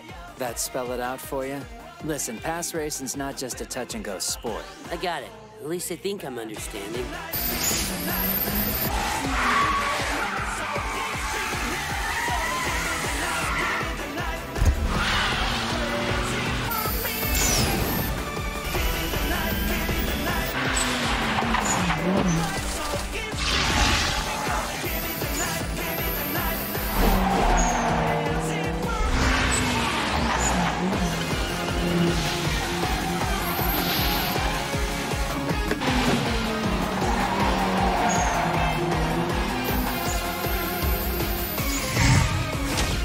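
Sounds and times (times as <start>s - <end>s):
fast dance music with pounding beat: 6.5s - 42.7s
car engines revving: 7.3s - 43.0s
tyres squealing: 14.9s - 42.6s.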